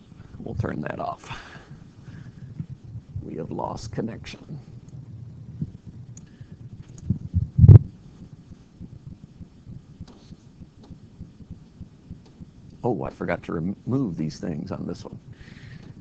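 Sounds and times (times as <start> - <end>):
low room noise: 0.0 - 16.0.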